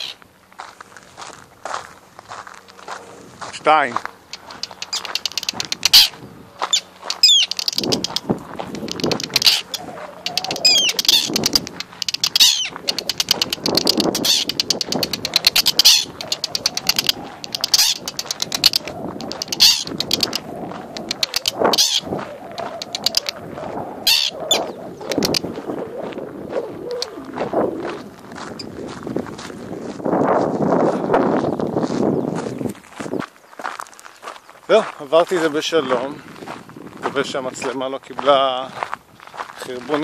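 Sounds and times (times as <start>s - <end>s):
terns chattering alarm calls: 0.0s - 0.2s, 3.7s - 27.6s.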